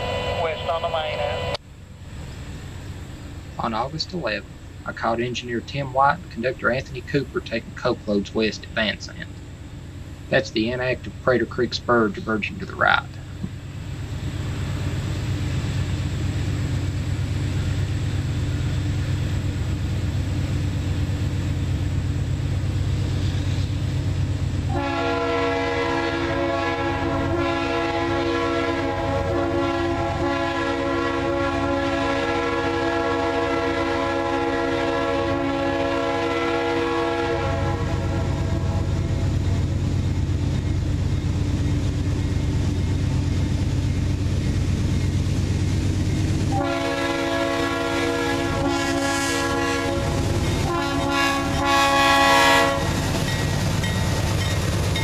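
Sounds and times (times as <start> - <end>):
locomotive air horn blasts: 0.0 - 1.6, 24.7 - 39.4, 46.5 - 53.0
diesel train rumble: 0.0 - 55.0.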